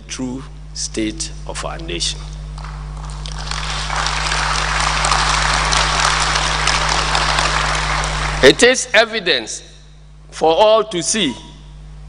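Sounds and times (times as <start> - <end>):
audience applauding: 2.6 - 8.8.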